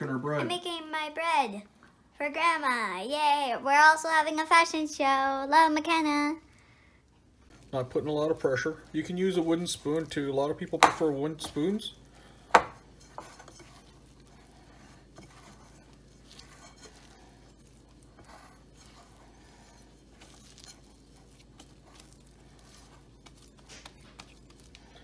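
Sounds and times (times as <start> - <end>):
low steady hum: 0.0 - 25.0
spatula stirring sticky dough: 7.2 - 25.0.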